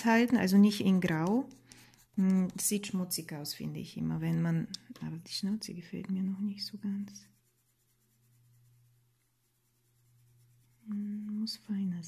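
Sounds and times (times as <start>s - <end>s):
pencil strokes on paper: 0.0s - 3.4s, 6.3s - 12.0s
low steady hum: 0.0s - 12.0s.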